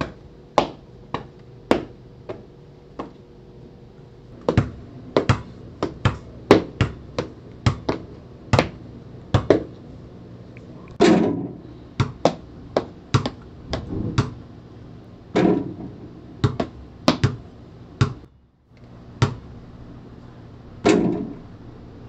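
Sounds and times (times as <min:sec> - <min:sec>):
basketball dribbling on gym floor: 0:00.0 - 0:02.4, 0:04.4 - 0:09.7, 0:12.0 - 0:14.4, 0:16.4 - 0:17.4, 0:18.0 - 0:18.3, 0:19.2 - 0:19.5
ball striking rim and backboard: 0:04.4 - 0:09.7, 0:11.0 - 0:14.5, 0:15.3 - 0:18.3, 0:19.2 - 0:19.5, 0:20.8 - 0:21.4.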